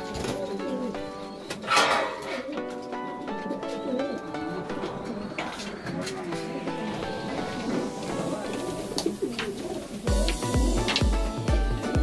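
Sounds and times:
background music: 0.0 - 12.0
pigeons cooing: 0.0 - 12.0
deep bass beat: 10.1 - 12.0.

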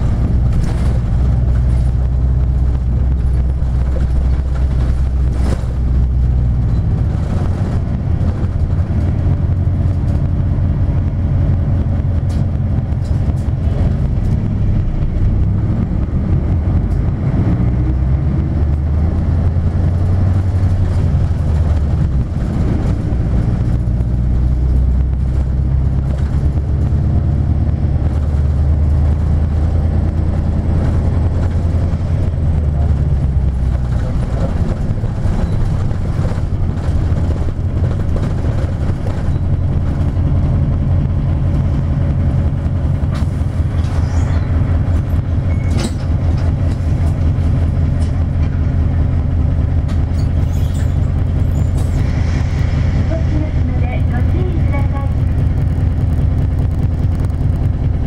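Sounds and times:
bus diesel engine drone: 0.0 - 58.0.

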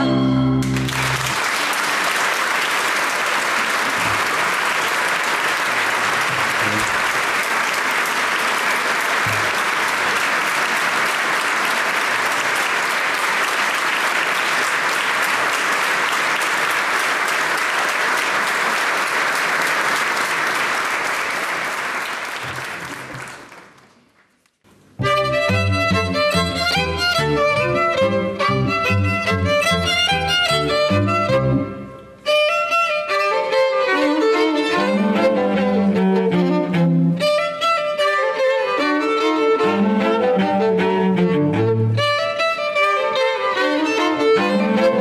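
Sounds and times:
music: 0.0 - 1.4, 25.0 - 45.0
audience applauding: 0.6 - 24.4.

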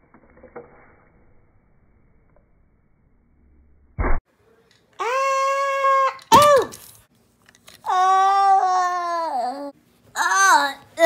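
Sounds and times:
person giving high-pitched cries: 5.0 - 6.8, 7.8 - 11.0.

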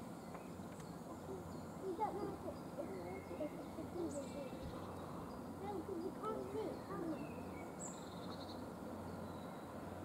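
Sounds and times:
people talking indistinctly: 1.2 - 7.4.

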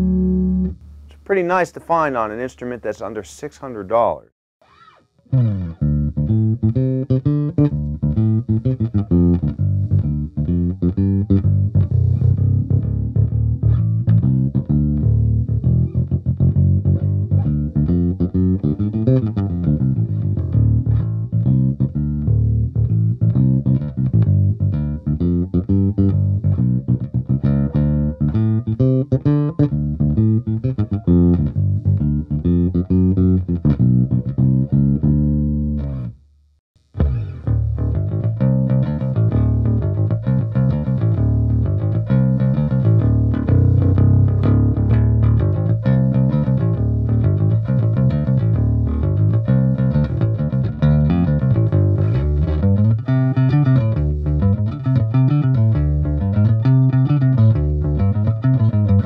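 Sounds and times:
plucked bass guitar line: 0.0 - 4.2, 5.2 - 36.2, 36.8 - 59.0.

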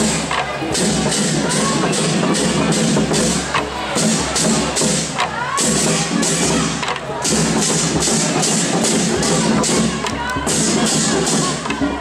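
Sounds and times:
crowd chatter: 0.0 - 12.0
large drums beating: 0.0 - 12.0.

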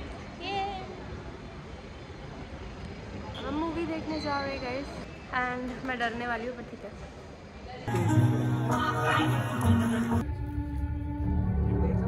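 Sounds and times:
shopping mall hum: 0.0 - 12.0.

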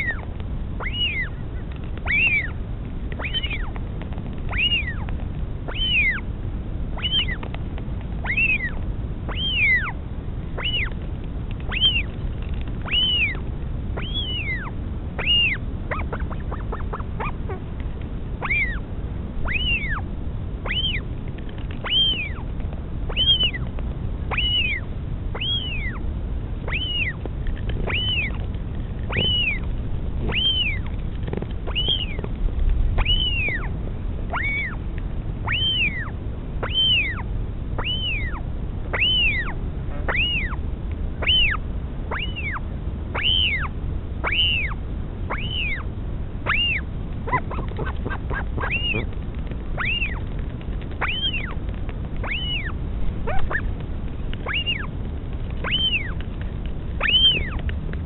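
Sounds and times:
chick peeping calls: 0.0 - 6.3, 6.9 - 7.6, 8.2 - 32.4, 33.0 - 33.7, 34.3 - 34.8, 35.4 - 40.6, 41.2 - 57.7
wind rumble on microphone: 0.0 - 58.0.

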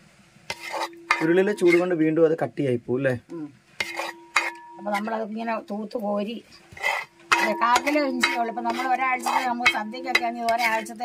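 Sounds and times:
spoon scraping in clay pot: 0.5 - 2.0, 3.8 - 5.6, 6.6 - 11.0.

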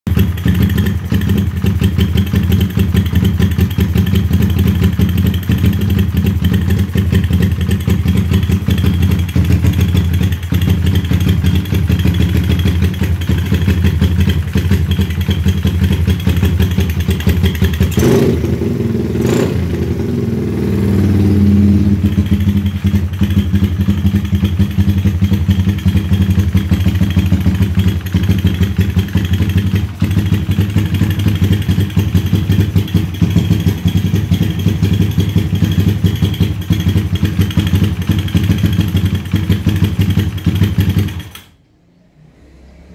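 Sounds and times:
motorcycle engine running: 0.0 - 41.6.

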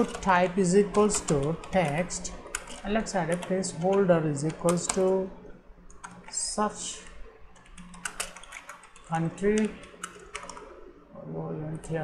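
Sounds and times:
keyboard keystroke clicks: 7.7 - 10.7.

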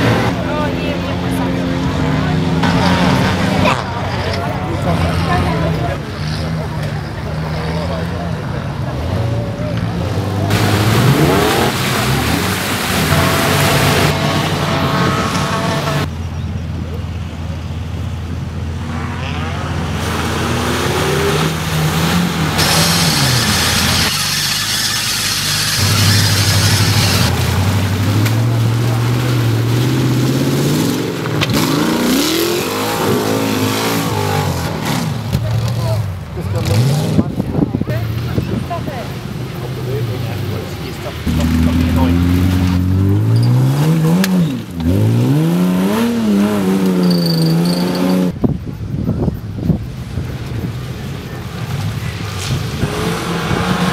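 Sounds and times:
off-road vehicle engines revving: 0.0 - 53.9.

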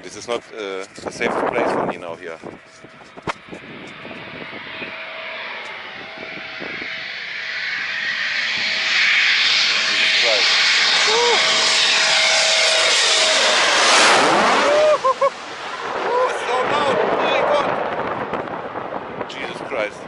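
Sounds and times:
fighter jet engine approaching: 0.0 - 20.0
steady jet whine: 0.0 - 20.0.

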